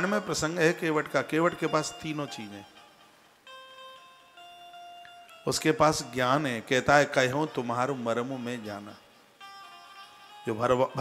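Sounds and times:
soft instrumental music: 0.0s - 11.0s.

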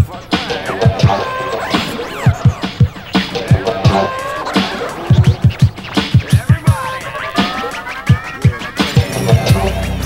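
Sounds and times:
turntable scratching: 0.0s - 10.0s.

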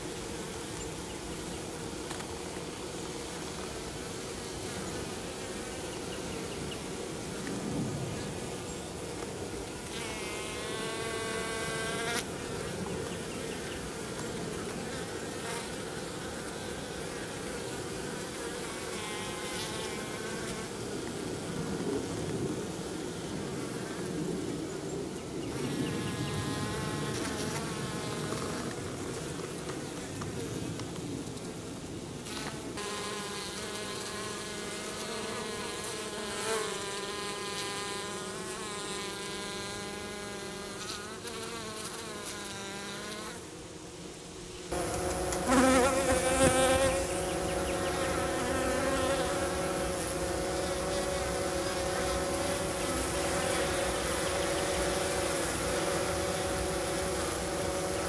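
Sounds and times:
bees buzzing in flight: 32.3s - 43.8s, 44.6s - 58.0s.

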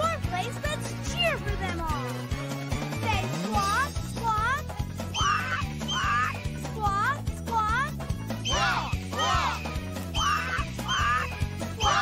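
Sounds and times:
background music with steady beat: 0.0s - 12.0s
cartoon hawks crying: 5.1s - 6.4s, 8.4s - 12.0s.

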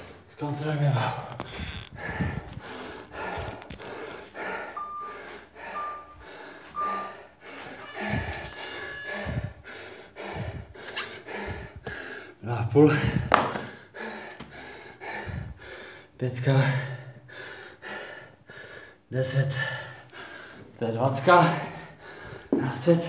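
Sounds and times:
person panting hard: 1.0s - 22.8s
short beeps: 4.7s - 6.2s, 6.8s - 9.4s
heavy knocks: 13.3s - 13.7s.

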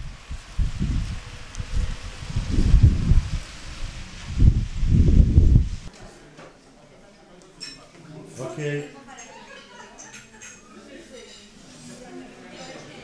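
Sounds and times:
wind buffeting microphone: 0.0s - 5.9s.

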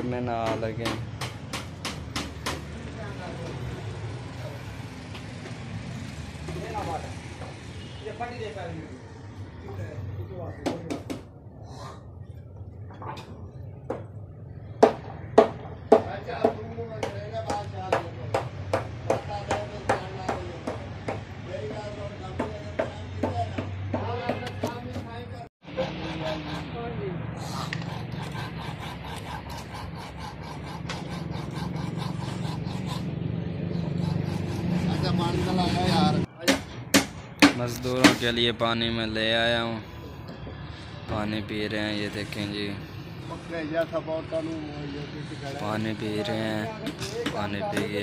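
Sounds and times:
people talking: 41.1s - 48.0s.

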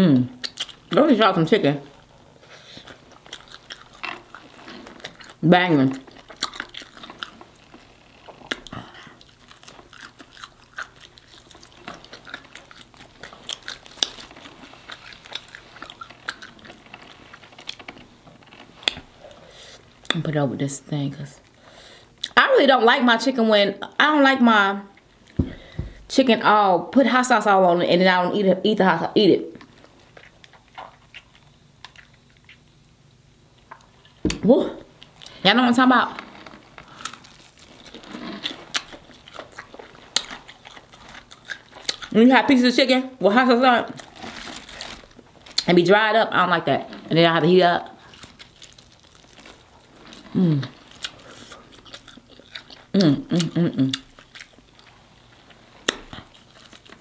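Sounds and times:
person chewing crispy food: 0.4s - 1.0s, 1.9s - 20.2s, 29.6s - 32.9s, 36.1s - 42.2s, 43.9s - 45.8s, 47.8s - 57.0s.

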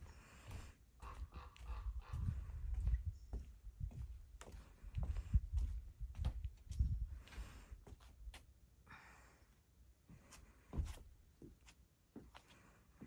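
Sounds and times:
footsteps on wooden deck: 0.0s - 8.5s, 10.1s - 13.0s.

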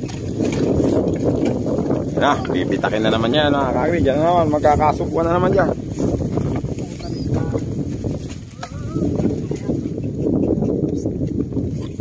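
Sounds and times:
sled dragging through mud: 0.0s - 12.0s.

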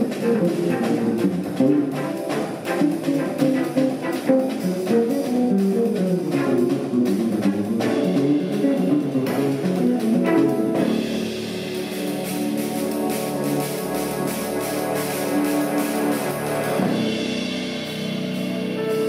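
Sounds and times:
jazz trio playing: 0.0s - 19.0s.

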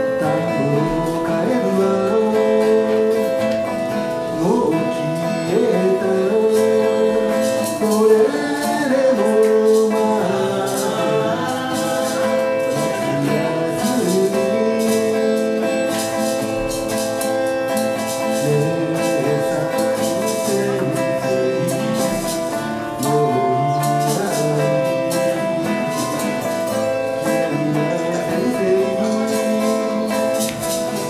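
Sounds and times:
acoustic guitar strumming: 0.0s - 31.0s.

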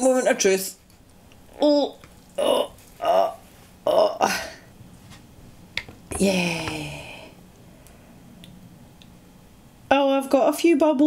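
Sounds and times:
person saying oh: 2.4s - 4.4s, 6.1s - 7.3s.

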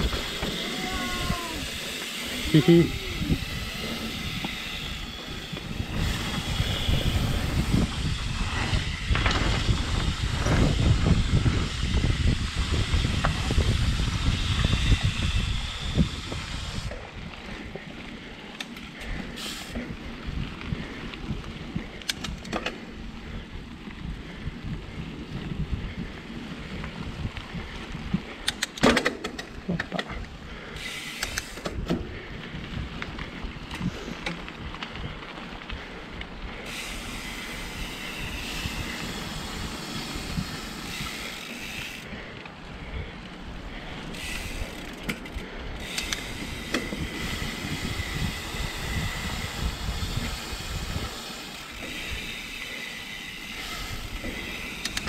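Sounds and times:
tyres rolling on dirt: 0.0s - 11.9s, 15.9s - 55.0s
wind buffeting microphone: 0.0s - 18.4s, 19.0s - 28.5s, 30.1s - 55.0s
bike rattles and clicks: 0.0s - 55.0s.

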